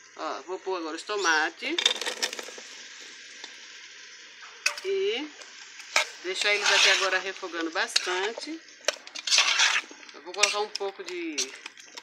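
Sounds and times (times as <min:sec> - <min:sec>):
oil sizzling in a pot: 0:00.0 - 0:12.0.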